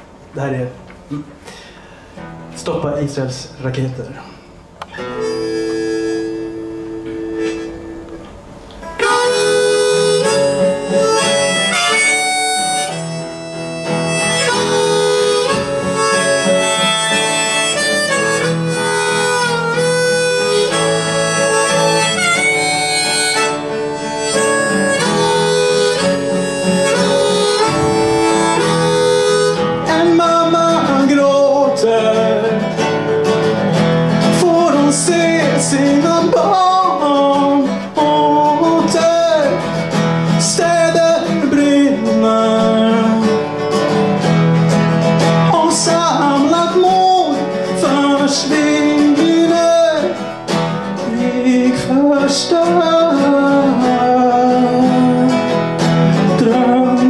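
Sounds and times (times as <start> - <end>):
strummed acoustic guitar: 1.0 - 3.6, 4.4 - 57.0
harmonica: 4.9 - 57.0.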